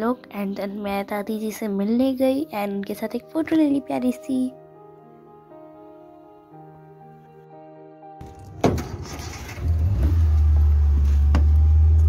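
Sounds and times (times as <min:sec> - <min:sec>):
car engine rumble: 0:08.2 - 0:12.0.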